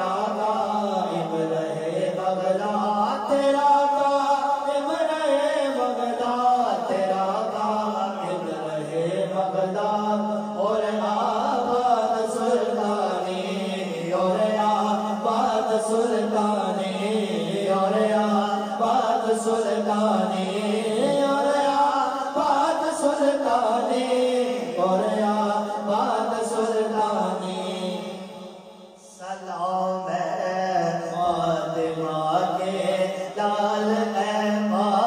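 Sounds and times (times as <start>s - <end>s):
low held vocal drone: 0.0s - 35.0s
men singing devotional song: 0.0s - 35.0s.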